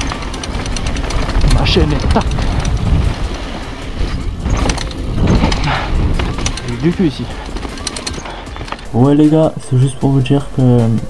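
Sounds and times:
wind rumble on microphone: 0.0s - 7.5s
rattling clicks from bike: 0.0s - 9.2s
bike tyre noise: 0.0s - 9.6s.

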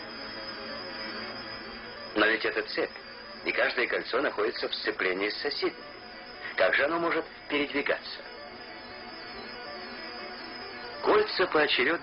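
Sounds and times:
soft drone with hiss: 0.0s - 12.0s.

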